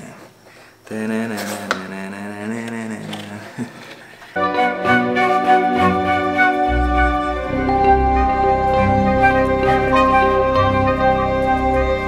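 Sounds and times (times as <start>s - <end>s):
background music with sustained chords: 4.4s - 12.0s.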